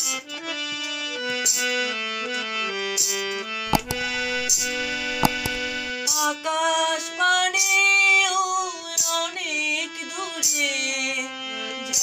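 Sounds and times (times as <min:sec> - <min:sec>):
harmonium: 0:00.0 - 0:12.0.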